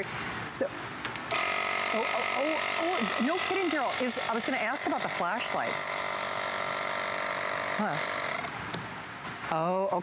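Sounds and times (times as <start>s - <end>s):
air compressor running: 1.3s - 8.6s.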